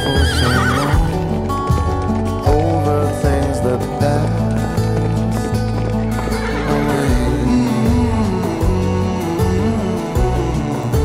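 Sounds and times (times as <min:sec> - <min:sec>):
horse whinnying: 0:00.0 - 0:01.7, 0:05.9 - 0:07.6
music with low beat: 0:01.0 - 0:11.0.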